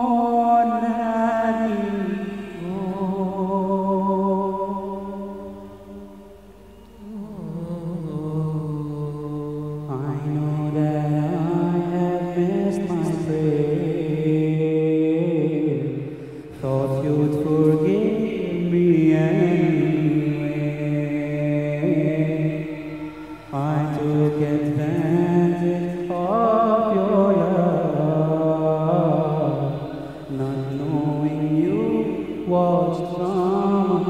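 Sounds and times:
man chanting into a microphone: 0:07.2 - 0:34.0.

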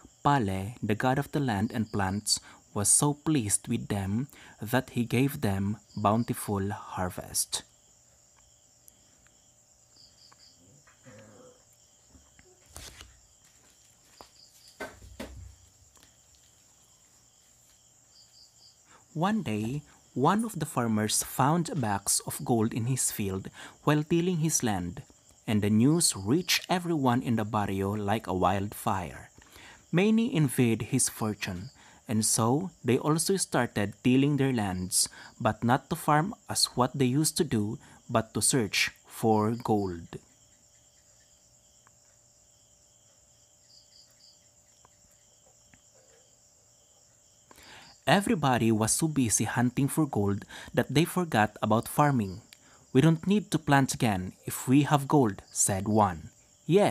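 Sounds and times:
faint background hiss: 0:00.0 - 0:56.9
insects chirring: 0:00.0 - 0:56.9.

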